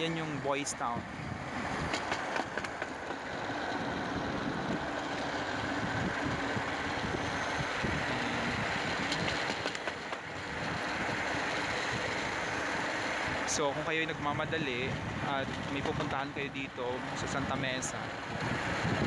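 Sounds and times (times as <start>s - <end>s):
steel wheels rumbling on rail track: 0.0s - 19.0s.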